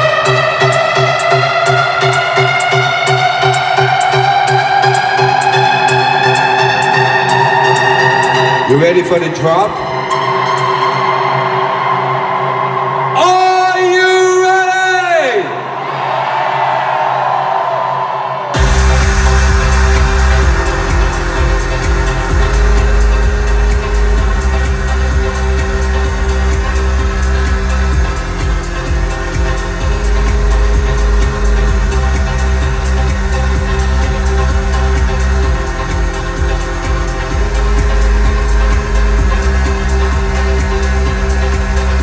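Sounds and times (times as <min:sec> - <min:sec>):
electronic dance music: 0:00.0 - 0:15.8, 0:18.4 - 0:42.0
sustained synth tones: 0:18.6 - 0:42.0.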